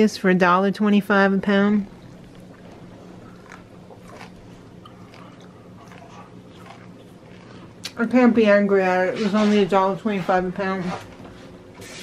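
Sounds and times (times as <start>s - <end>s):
steady low hum: 0.0s - 12.0s
person chewing crunchy food: 1.9s - 8.0s.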